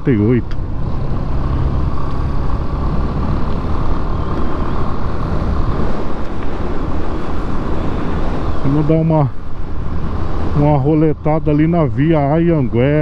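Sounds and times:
motorcycle engine cruising: 0:00.0 - 0:13.0
wind buffeting microphone: 0:00.0 - 0:13.0.

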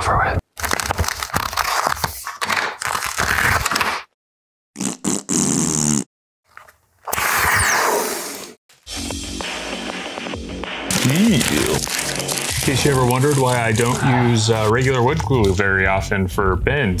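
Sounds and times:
plastic bag crinkling and scraping: 0:10.9 - 0:15.2.

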